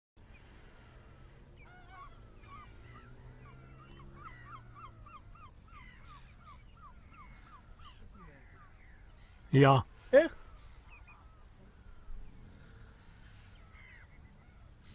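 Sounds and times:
birds calling: 0.2 - 14.9.

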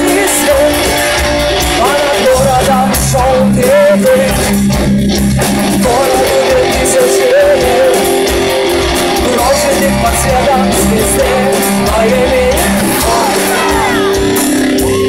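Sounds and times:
rock band playing: 0.0 - 15.0
woman singing: 1.8 - 4.4, 9.2 - 14.3.

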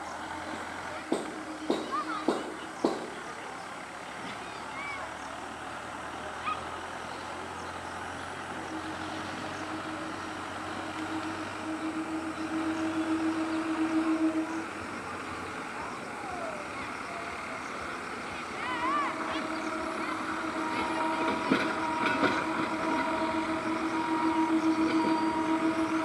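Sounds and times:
train rumble: 0.0 - 26.0
low steady tone: 8.5 - 17.3, 18.7 - 26.0.

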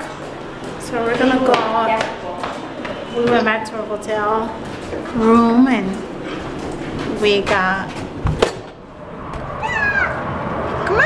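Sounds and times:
child's meow-like cries: 9.6 - 10.2.

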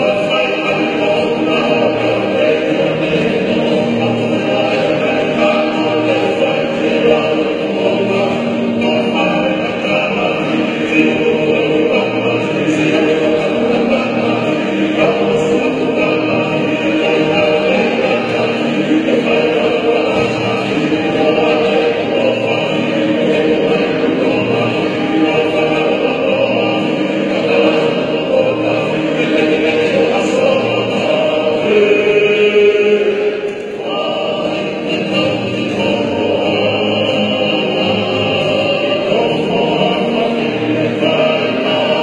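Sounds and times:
men singing in harmony: 0.0 - 42.0.

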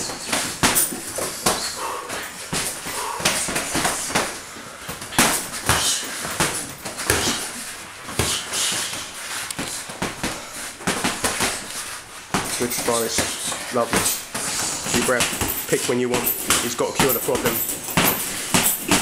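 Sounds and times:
boxing gloves slapping and thudding: 0.0 - 19.0
short hissing breaths: 1.3 - 6.4, 7.0 - 12.2, 14.3 - 15.0.

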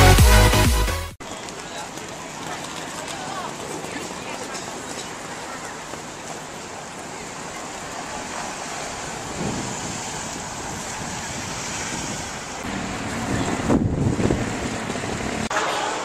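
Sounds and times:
outdoor street noise: 0.0 - 16.0
wind buffeting microphone: 9.0 - 15.5.

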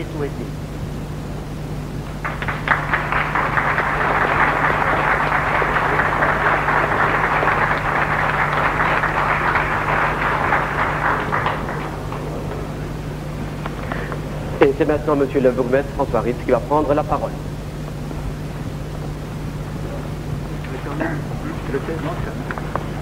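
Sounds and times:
steady low hum: 0.0 - 23.0
audience applauding: 2.0 - 14.3, 19.7 - 23.0.

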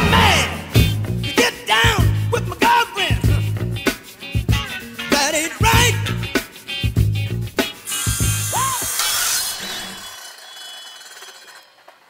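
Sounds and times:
funky guitar music: 0.0 - 8.9
power saw cutting: 7.8 - 12.0.

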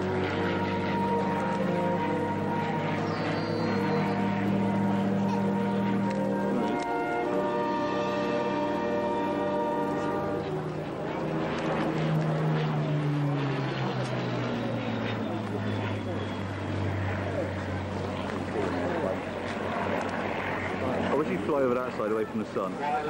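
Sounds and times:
propeller aircraft engine drone: 0.0 - 23.0.

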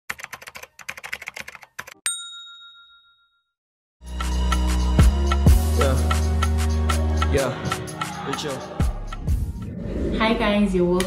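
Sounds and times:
rapid key clicks: 0.1 - 2.0
bell ding: 2.1 - 3.5.

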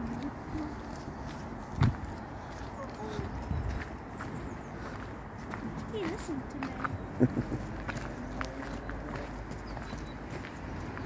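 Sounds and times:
footsteps on rough path: 0.0 - 11.0.

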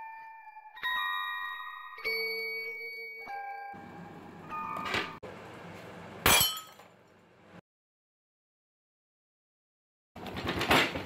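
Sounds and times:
glockenspiel-style bell notes: 0.0 - 5.0.

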